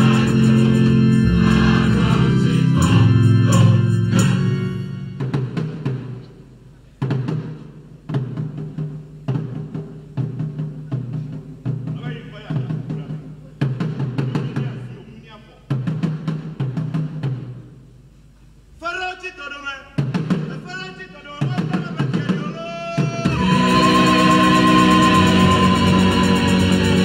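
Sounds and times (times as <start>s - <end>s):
choir singing: 0.0s - 5.1s, 23.2s - 27.0s.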